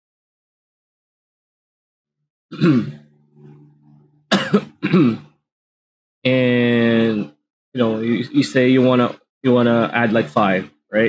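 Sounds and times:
person clearing throat: 0:02.5 - 0:03.1, 0:04.3 - 0:05.4
soft low humming: 0:02.6 - 0:05.2.

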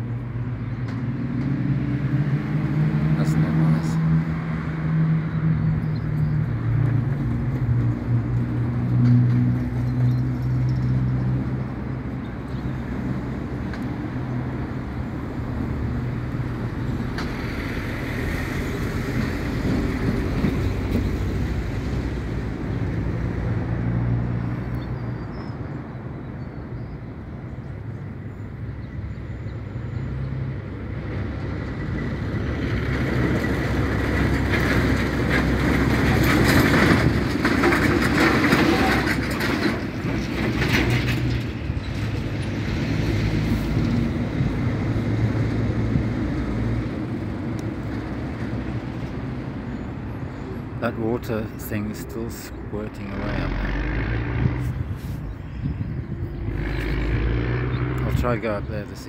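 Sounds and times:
heavy vehicles passing: 0:00.0 - 0:59.0.

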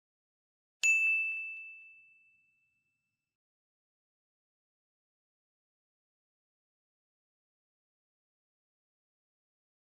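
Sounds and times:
bright bell ding: 0:00.8 - 0:03.2.

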